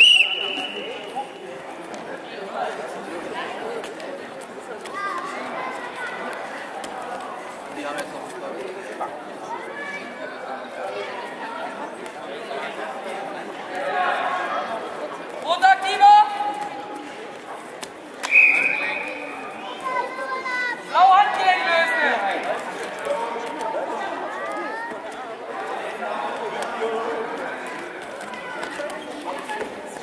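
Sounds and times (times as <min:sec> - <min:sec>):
echoing background chatter: 0:00.0 - 0:30.0.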